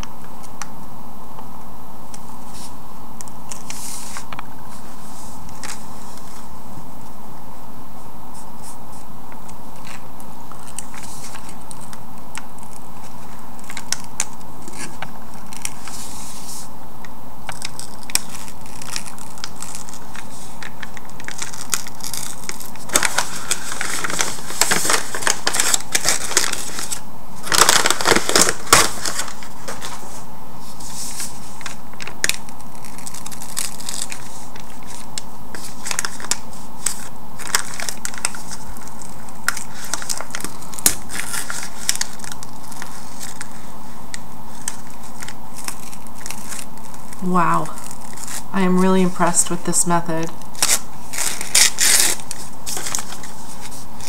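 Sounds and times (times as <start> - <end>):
faint steady hum: 0.0 - 54.0
paper crinkling and tearing: 8.3 - 16.7, 17.4 - 48.5, 50.1 - 54.0.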